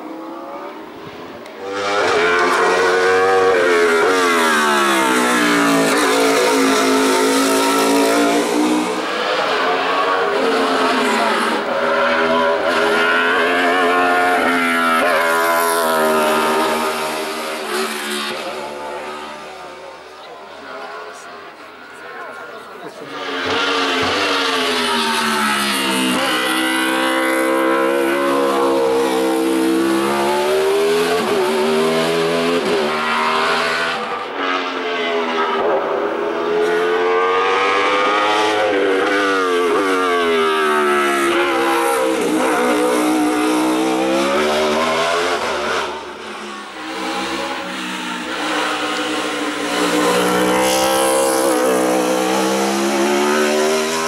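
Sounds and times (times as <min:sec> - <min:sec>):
race car engine at high revs: 0:00.0 - 0:54.0.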